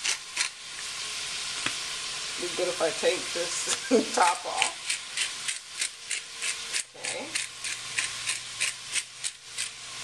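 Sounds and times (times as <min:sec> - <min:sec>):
seasoning shaker shaking: 0:00.0 - 0:10.0
vegetables sizzling: 0:00.0 - 0:10.0.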